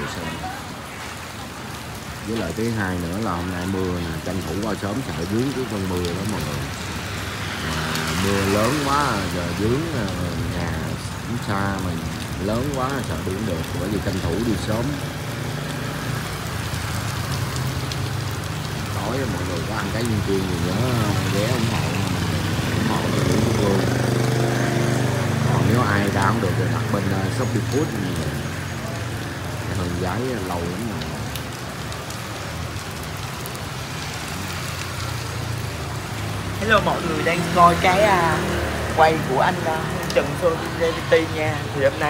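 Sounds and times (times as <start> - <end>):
heavy rain falling: 0.0 - 42.0.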